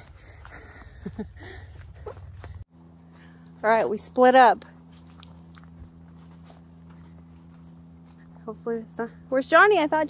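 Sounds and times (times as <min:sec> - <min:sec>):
footsteps crunching on dirt: 0:00.0 - 0:08.9
steady low hum: 0:00.0 - 0:10.0.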